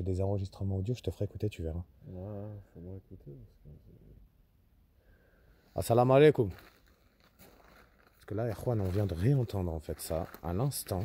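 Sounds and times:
man saying a word: 2.0 - 4.2.

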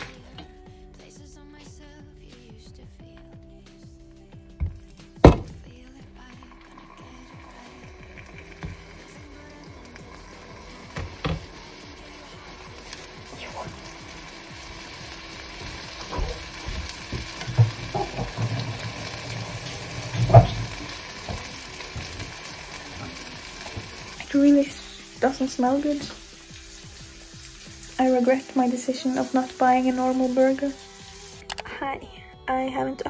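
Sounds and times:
patty sizzling in frying pan: 6.6 - 31.5.

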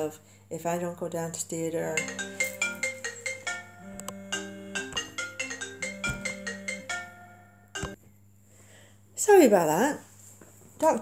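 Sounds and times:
telephone ringtone melody: 2.0 - 8.0.

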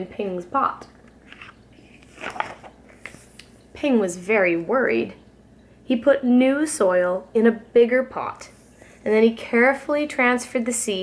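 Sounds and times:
soft breath: 8.5 - 9.1.

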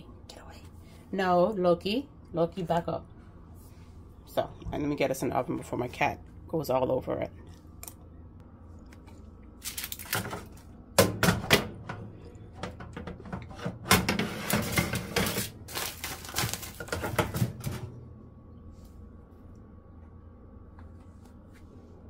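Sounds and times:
foil crinkling: 9.6 - 10.6, 14.5 - 17.3
metal baking tray clattering: 12.6 - 17.9.

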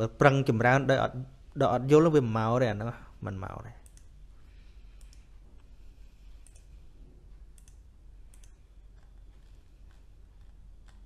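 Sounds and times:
steady hum: 0.0 - 11.0
faint clicks: 5.0 - 5.7, 6.4 - 6.8, 7.5 - 11.0.

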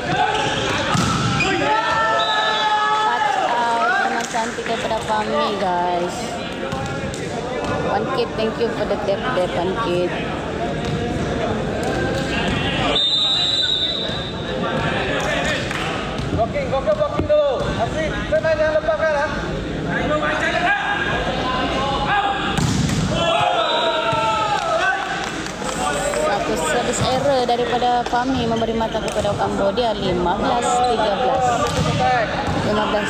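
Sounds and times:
spectators talking and calling out: 19.3 - 33.0.

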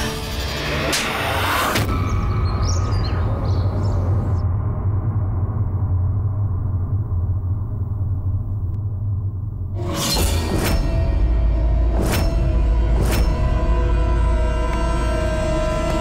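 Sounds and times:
low suspense drone: 0.0 - 16.0.

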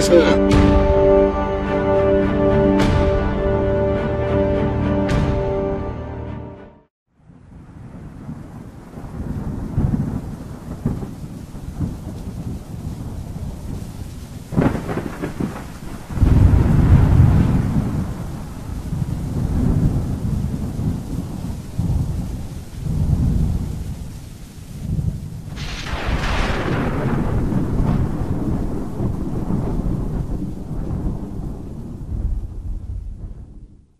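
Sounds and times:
continuous rain: 0.0 - 0.4, 7.2 - 33.9
rolling thunder: 7.3 - 33.9
sharp thunder crack: 14.5 - 24.0, 24.8 - 33.9.

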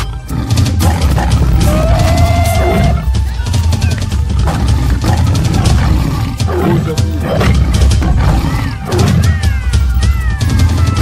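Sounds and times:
music with heavy bass beat: 0.0 - 11.0
tiger roaring: 0.0 - 11.0.

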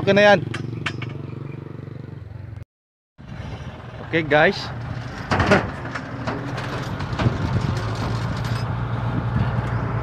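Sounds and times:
road and air noise: 0.0 - 2.6, 3.2 - 10.0
gear knocking and rattling: 4.8 - 8.7.

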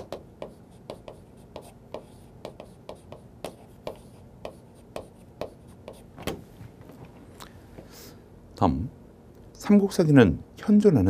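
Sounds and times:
chalk tapping and scraping: 0.0 - 6.1.

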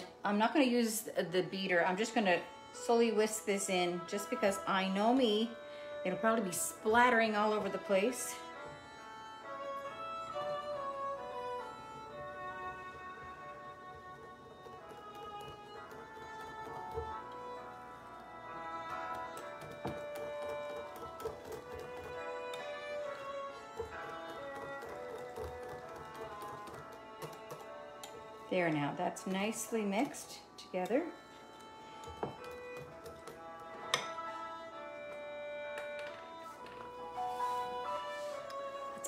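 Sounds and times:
fiddle tune: 0.0 - 39.0
whisk clicking in glass bowl: 19.0 - 22.2, 23.8 - 27.7.

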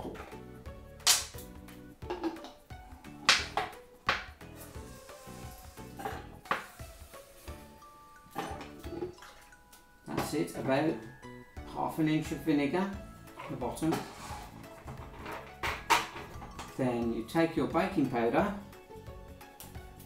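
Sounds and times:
quiet background music: 0.0 - 20.0
glass bottles knocking and clinking: 2.0 - 2.7, 8.2 - 11.6, 13.1 - 17.0.

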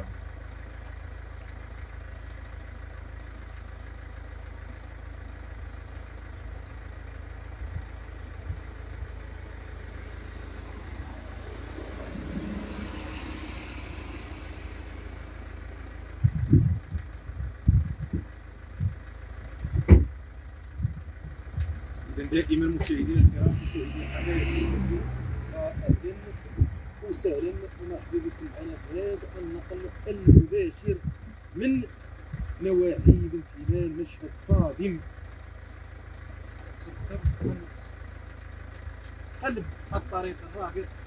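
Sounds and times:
road vehicle passing: 0.0 - 41.0
steady low rumble: 0.0 - 41.0
short low thumps: 7.6 - 23.8, 25.3 - 27.1.

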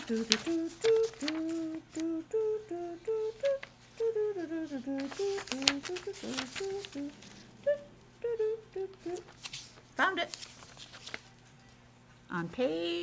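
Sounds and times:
paper pages rustling: 0.0 - 2.0, 4.9 - 7.5, 9.1 - 11.8
woman humming: 0.0 - 9.3.

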